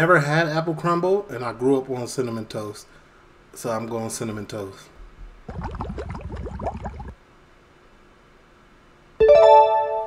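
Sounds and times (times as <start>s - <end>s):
gurgling bubbling chirps: 5.5s - 7.2s.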